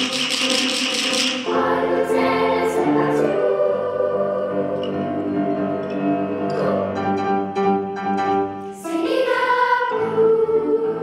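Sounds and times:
children's choir singing: 0.0s - 8.0s, 8.7s - 11.0s.

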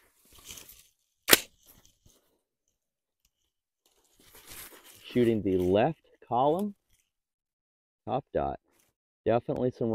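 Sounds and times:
suppressed rifle shot: 1.3s - 1.6s
faint rustling: 3.3s - 7.2s.

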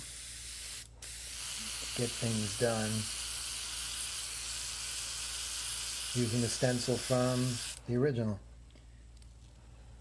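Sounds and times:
airbrush spraying hiss: 0.0s - 7.8s.

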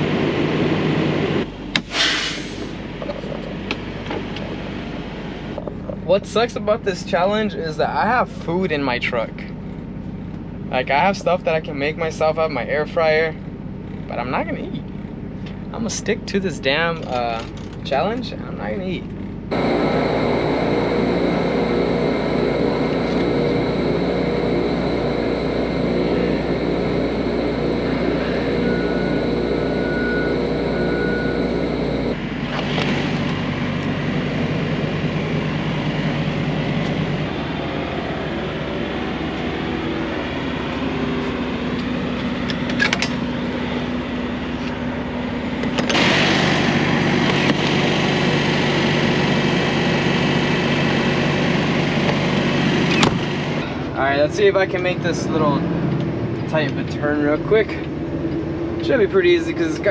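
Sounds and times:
machinery hum: 0.0s - 59.9s
vehicle engines rumbling: 0.0s - 59.9s.

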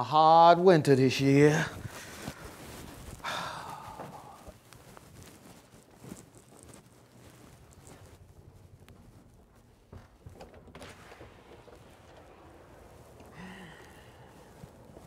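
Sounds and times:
footsteps along a hallway: 1.6s - 15.0s.

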